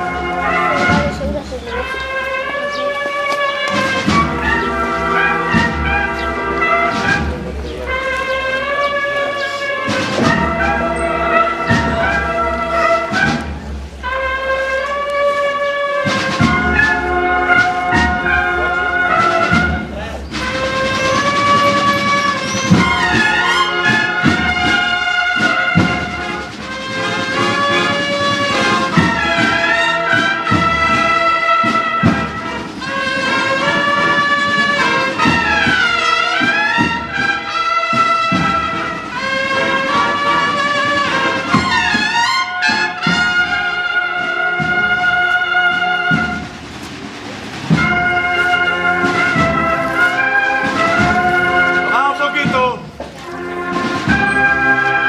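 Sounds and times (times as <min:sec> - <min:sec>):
brass band playing a march: 0:00.0 - 0:55.0
drum beats: 0:00.0 - 0:55.0.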